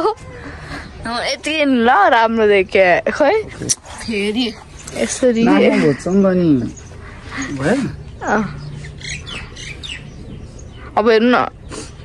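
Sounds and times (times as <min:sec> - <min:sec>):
steady low hum: 0:00.0 - 0:12.0
birds chirping: 0:00.1 - 0:12.0.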